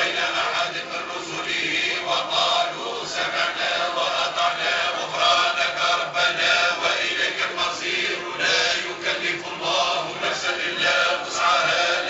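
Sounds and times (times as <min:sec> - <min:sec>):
group of voices chanting: 0:00.0 - 0:12.0.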